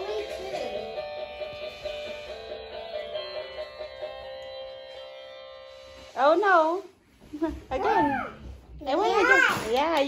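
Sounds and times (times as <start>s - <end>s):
toy electric guitar tune: 0.0s - 6.2s.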